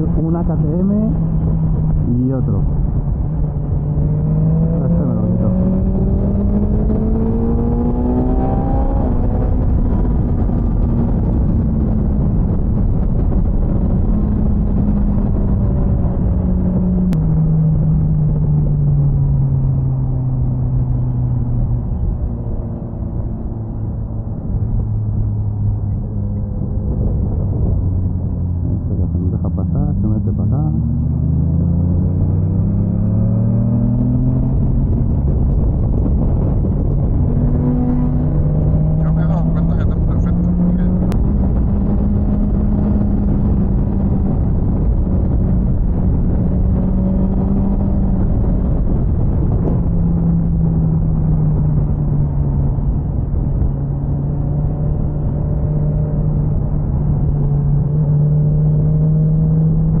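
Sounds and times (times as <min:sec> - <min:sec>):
motorcycle engine accelerating: 0:00.0 - 1:00.0
wind rush on microphone: 0:00.0 - 1:00.0.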